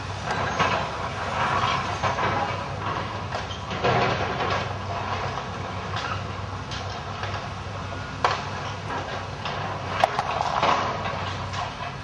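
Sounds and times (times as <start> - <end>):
diesel engine hum: 0.0 - 12.0.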